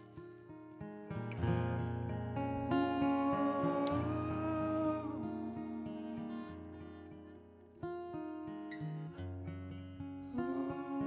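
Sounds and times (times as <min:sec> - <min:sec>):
strummed guitar: 0:00.0 - 0:11.0.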